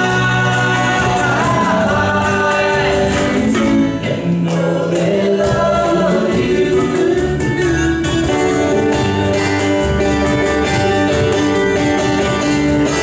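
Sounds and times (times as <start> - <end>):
voices singing in unison: 0.0 - 8.0
live band playing: 0.0 - 13.0.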